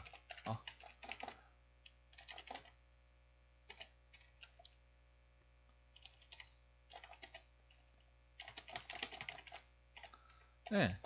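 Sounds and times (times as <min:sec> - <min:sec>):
faint keyboard typing: 0:00.0 - 0:02.8, 0:03.6 - 0:04.8, 0:05.9 - 0:11.0.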